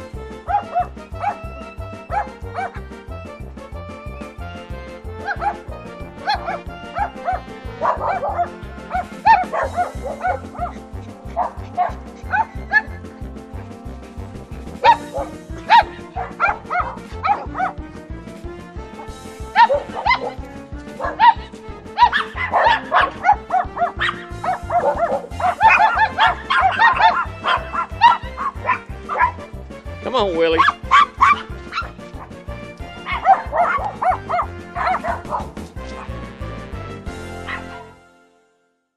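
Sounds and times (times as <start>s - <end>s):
music with steady beat: 0.0s - 38.6s
small dogs yipping and barking: 0.4s - 3.1s, 5.1s - 13.2s, 14.8s - 17.8s, 19.0s - 29.5s, 30.6s - 36.2s, 37.4s - 37.9s.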